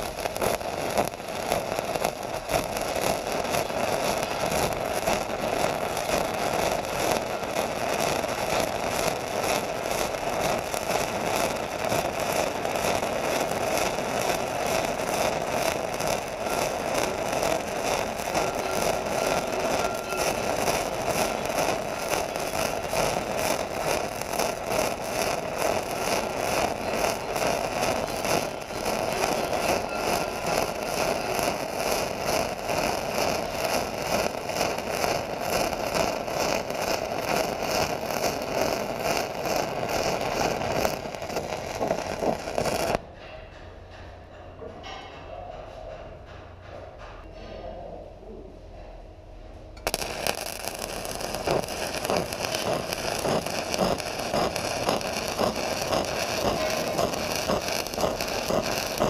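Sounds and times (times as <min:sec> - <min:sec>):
welding arc crackling hiss: 0:00.0 - 0:43.0, 0:49.8 - 0:59.0.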